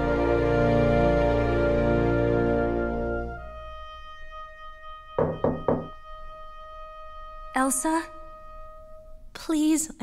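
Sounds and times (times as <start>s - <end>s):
held musical note: 2.8s - 9.0s
knocks on a door: 5.2s - 6.0s.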